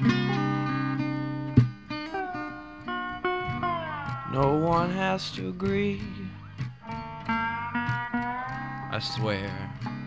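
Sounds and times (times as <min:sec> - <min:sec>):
guitar accompaniment: 0:00.0 - 0:10.0
person singing: 0:02.0 - 0:09.9
gliding melody line: 0:02.1 - 0:04.9.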